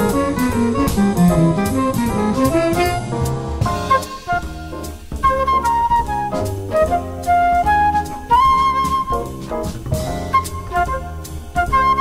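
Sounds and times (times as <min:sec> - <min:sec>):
small jazz group playing: 0:00.0 - 0:12.0.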